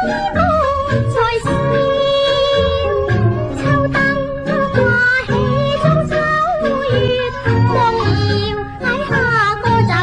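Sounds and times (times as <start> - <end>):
instrumental accompaniment: 0.0 - 10.0
woman singing: 0.0 - 10.0.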